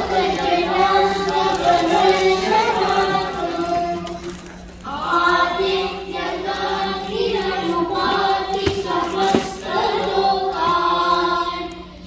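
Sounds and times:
children singing in unison: 0:00.0 - 0:04.2, 0:04.9 - 0:12.0.

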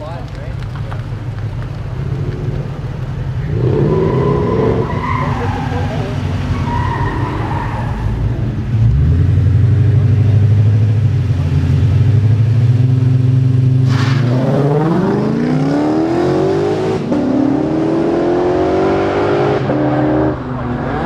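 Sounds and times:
voices: 0:00.0 - 0:08.2
drag car engines revving: 0:00.0 - 0:21.0
cars launching with crack: 0:13.8 - 0:15.6.

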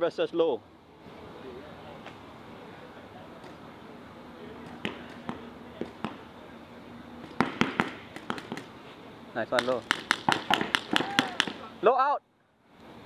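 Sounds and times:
paintball markers firing: 0:04.6 - 0:06.3, 0:07.2 - 0:08.8, 0:09.6 - 0:11.7.

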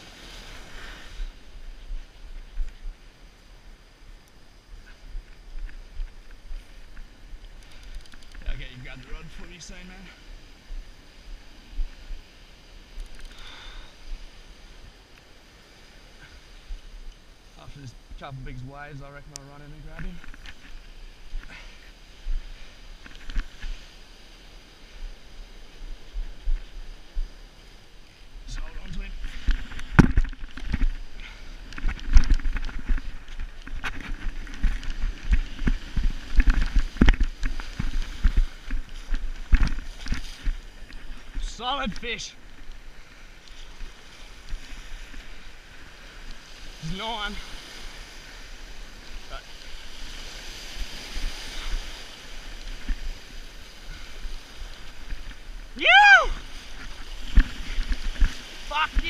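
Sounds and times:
surf on beach: 0:00.0 - 0:59.0
waves breaking: 0:00.0 - 0:59.0.

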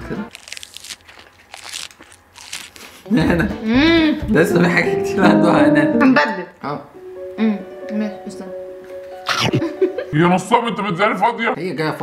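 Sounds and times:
plastic cup and foil crinkling: 0:00.3 - 0:03.1.

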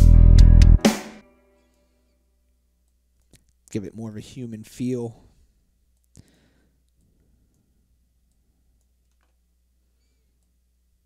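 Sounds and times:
guitar and bass music: 0:00.0 - 0:01.2
faint low hum: 0:01.6 - 0:11.0.

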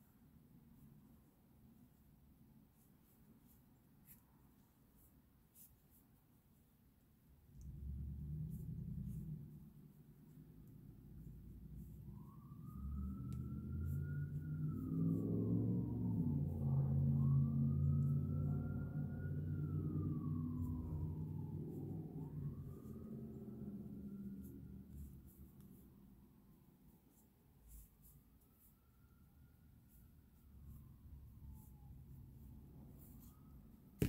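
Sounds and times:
siren wailing: 0:10.7 - 0:25.4.

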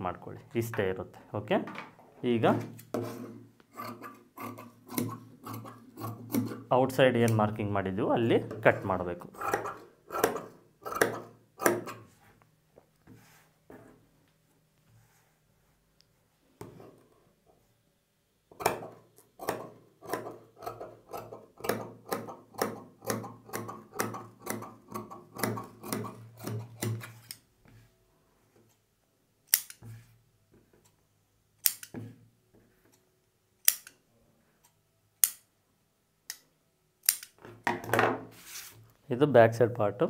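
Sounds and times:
scissors snipping fabric: 0:03.8 - 0:06.6, 0:09.4 - 0:12.0, 0:18.6 - 0:27.4.

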